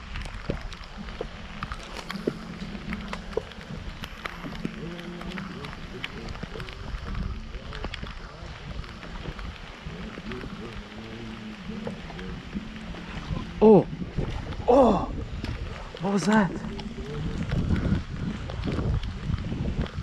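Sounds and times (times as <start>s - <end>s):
wind buffeting microphone: 0.0s - 20.0s
low murmuring voice: 4.5s - 14.0s, 16.5s - 20.0s.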